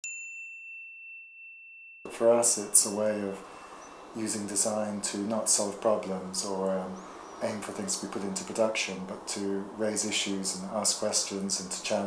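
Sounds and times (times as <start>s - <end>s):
high bell-like ding: 0.0s - 3.4s.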